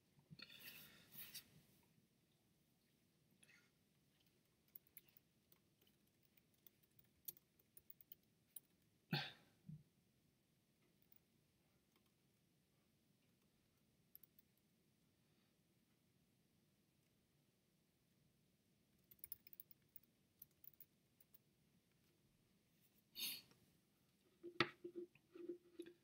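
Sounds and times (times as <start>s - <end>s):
faint scattered clicks: 19.0s - 21.4s.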